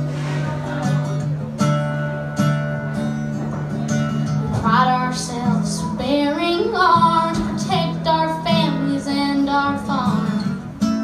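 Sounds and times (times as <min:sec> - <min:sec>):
acoustic guitar: 0:00.0 - 0:11.0
woman singing: 0:04.6 - 0:10.5.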